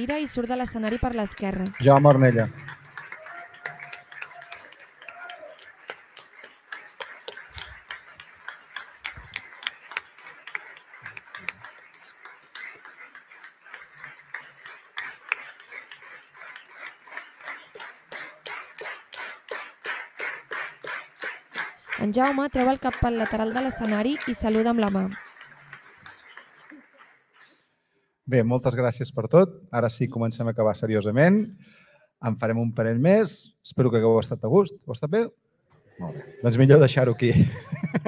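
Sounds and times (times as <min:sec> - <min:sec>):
audience clapping: 0:00.0 - 0:27.8, 0:36.4 - 0:38.0.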